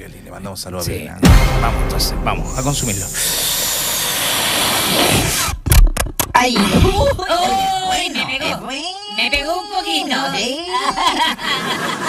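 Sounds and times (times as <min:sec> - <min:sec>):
helium gas hissing: 0:02.8 - 0:05.6.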